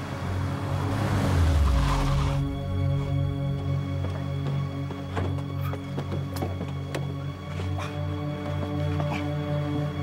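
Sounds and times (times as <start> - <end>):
car engine and tyre noise: 0.0 - 5.7
tense background music: 0.0 - 10.0.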